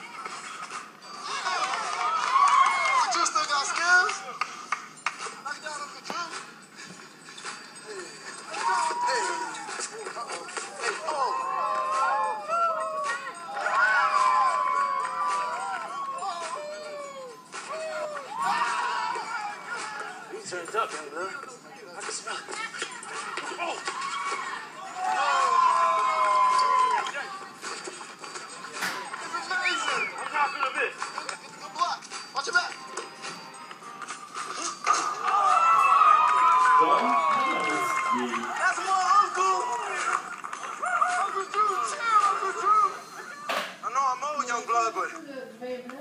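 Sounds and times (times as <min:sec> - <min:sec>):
music from tv: 0:00.0 - 0:46.0.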